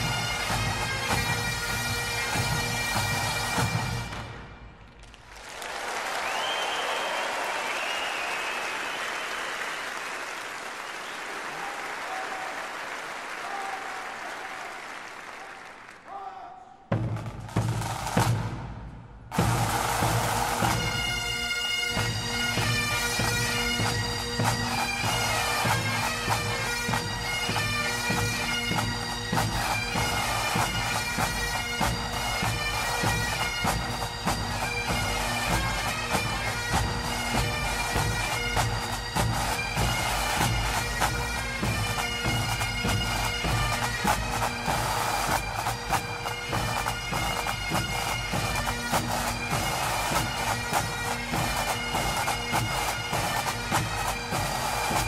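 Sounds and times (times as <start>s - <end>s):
bagpipe music: 0.0s - 4.8s, 19.4s - 55.0s.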